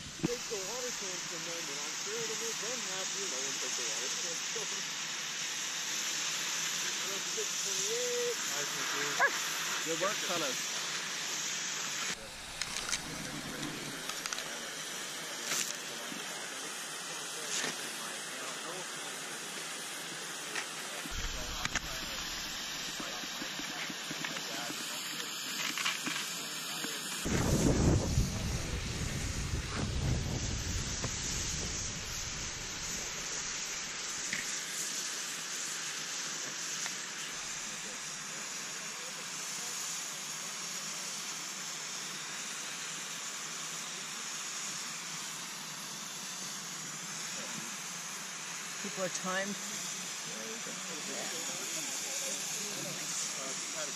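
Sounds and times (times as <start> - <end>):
steady outdoor hiss: 0.0 - 53.9
wind buffeting microphone: 27.3 - 33.1.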